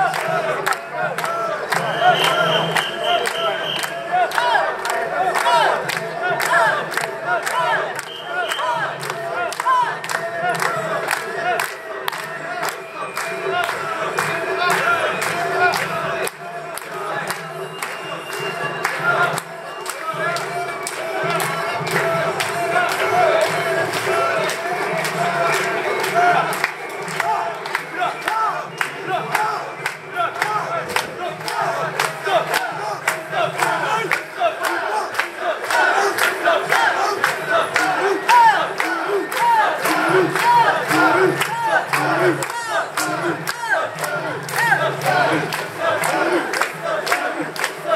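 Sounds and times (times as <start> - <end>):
crowd shouting a chant: 0.0 - 47.9.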